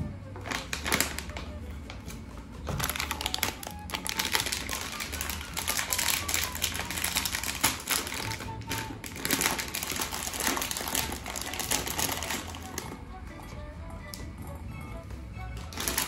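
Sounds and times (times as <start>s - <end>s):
background music: 0.0s - 16.0s
plastic packet crinkling: 0.4s - 1.6s, 2.7s - 13.0s, 15.7s - 16.0s.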